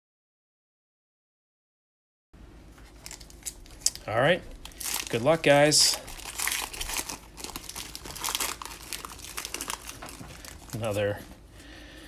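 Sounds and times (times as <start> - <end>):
foil wrapper tearing and crinkling: 2.9 - 11.2.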